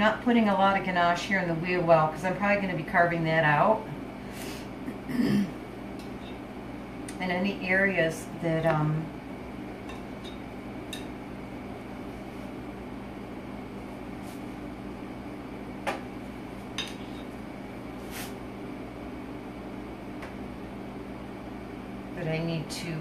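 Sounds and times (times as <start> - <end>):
appliance humming: 0.0 - 23.0.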